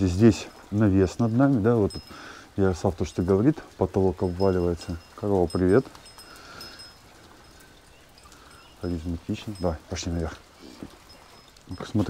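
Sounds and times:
speech: 0.0s - 2.0s, 2.6s - 5.9s, 8.8s - 10.4s, 11.7s - 12.0s
outdoor background noise: 0.0s - 12.0s.

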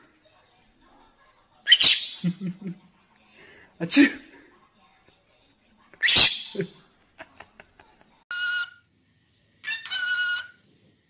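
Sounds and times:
lovebird sneeze-like call: 6.0s - 6.6s.

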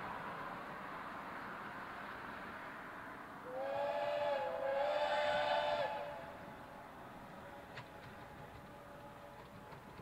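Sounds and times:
steam locomotive chime whistle: 3.5s - 6.3s.

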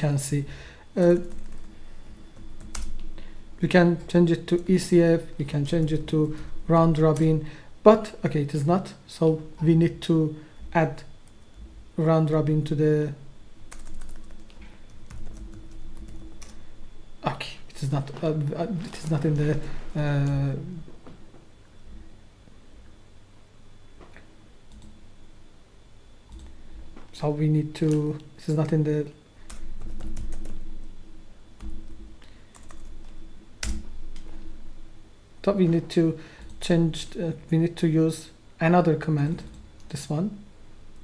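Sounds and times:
low steady hum: 0.0s - 41.0s
computer keyboard typing: 1.0s - 3.1s, 13.7s - 16.6s, 24.7s - 24.9s, 29.5s - 30.8s, 31.6s - 34.3s.

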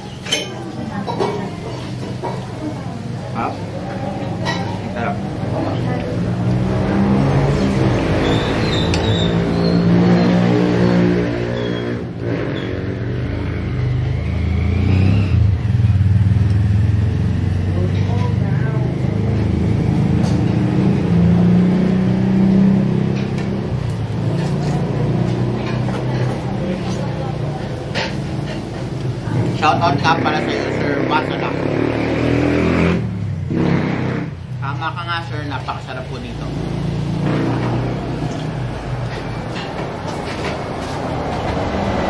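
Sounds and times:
vehicle engines passing: 0.0s - 42.0s.

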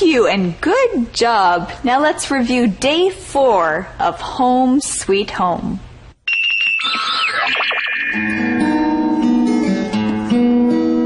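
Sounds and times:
electronic chime jingle: 6.3s - 9.6s.

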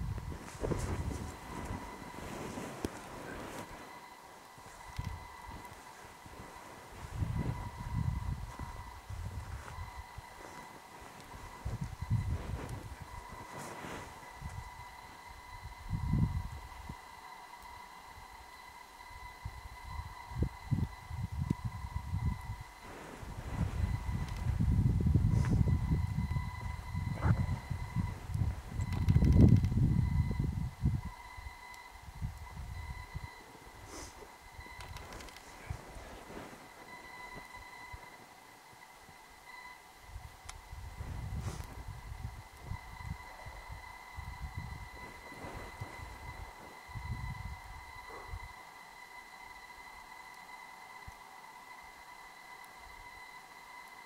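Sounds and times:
low rumbling noise: 0.0s - 48.8s
faint high-pitched whine: 0.0s - 54.0s.

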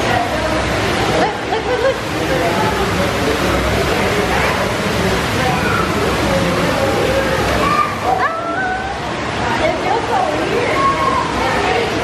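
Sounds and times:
people talking: 0.0s - 12.0s
water rushing into tank: 0.0s - 12.0s.

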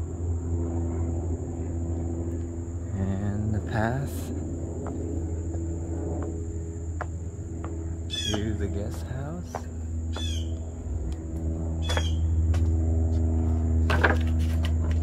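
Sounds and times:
high insect drone: 0.0s - 15.0s
low hum: 0.0s - 15.0s
bird chirping: 7.9s - 10.7s, 11.8s - 12.4s.

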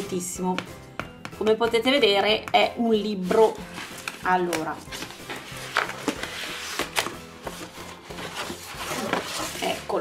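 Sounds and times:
background music: 0.0s - 10.0s
cardboard mailer rustling: 4.8s - 9.9s.

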